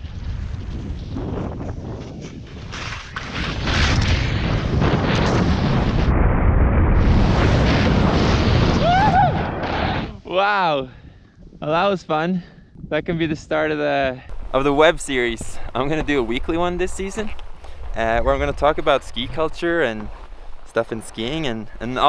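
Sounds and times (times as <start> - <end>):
wind buffeting microphone: 0.0 - 22.0
person crying out: 8.8 - 9.4.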